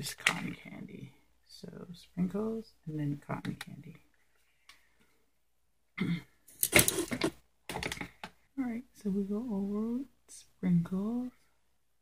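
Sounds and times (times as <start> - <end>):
woman clearing her throat: 6.0 - 6.4.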